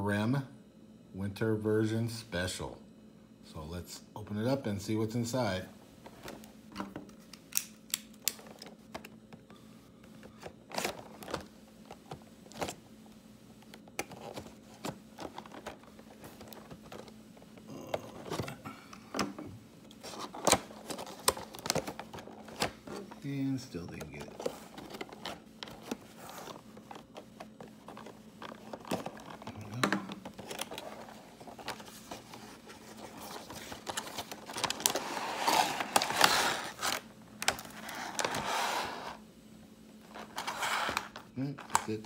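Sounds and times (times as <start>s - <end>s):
hands handling cardboard box: 23.9s - 38.5s
plastic packaging crinkling: 24.0s - 38.4s.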